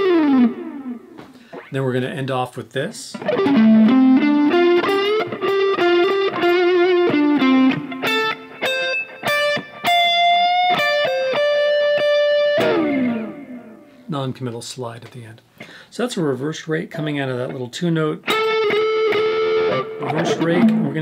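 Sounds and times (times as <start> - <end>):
overdriven electric guitar lead: 0.0 - 1.7, 3.2 - 14.0, 18.2 - 21.0.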